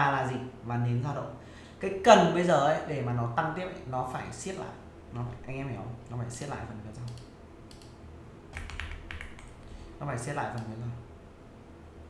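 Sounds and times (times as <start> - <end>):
faint low hum: 0.0 - 12.0
keyboard keys tapping: 8.5 - 9.7.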